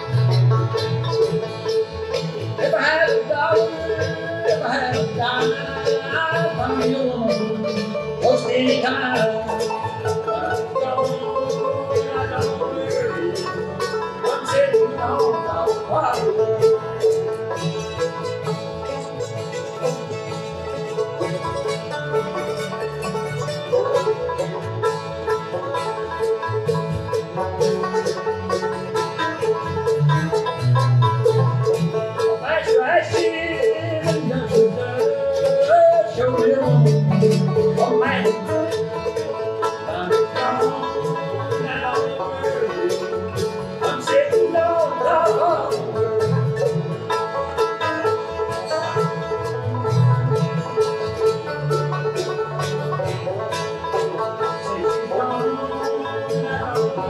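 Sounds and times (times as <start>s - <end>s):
bluegrass band playing: 0.0s - 57.0s
fast banjo picking: 0.0s - 57.0s.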